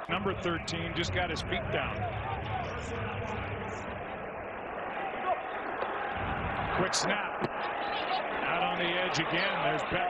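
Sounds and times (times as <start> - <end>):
stadium crowd hubbub: 0.0 - 10.0.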